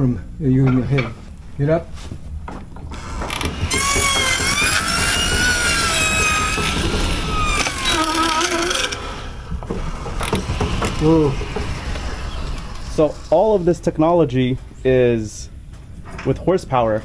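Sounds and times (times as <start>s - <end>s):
long high squeal: 3.7s - 9.4s
sawmill drive train clatter: 9.5s - 14.7s.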